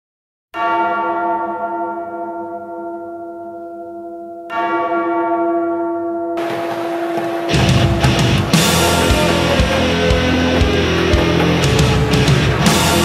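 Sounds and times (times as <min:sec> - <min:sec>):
bell tolling: 0:00.6 - 0:13.0.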